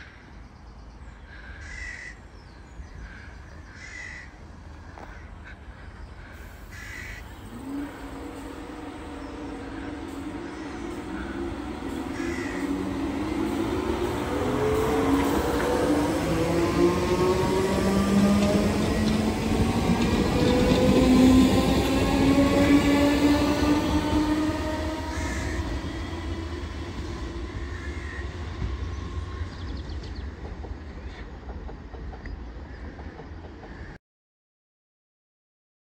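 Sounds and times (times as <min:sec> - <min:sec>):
electric train motors whining: 0:06.7 - 0:30.2.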